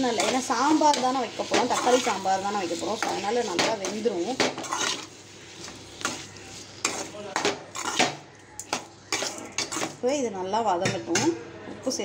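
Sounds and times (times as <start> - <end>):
metal spatula scraping a pan: 0.0 - 10.0.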